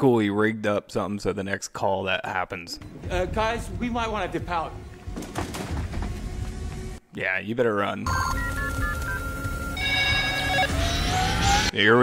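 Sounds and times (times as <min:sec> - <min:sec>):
telephone keypad beeps: 0:08.1 - 0:10.7
held dial tone: 0:08.1 - 0:10.8
electronic phone ring: 0:08.1 - 0:11.0.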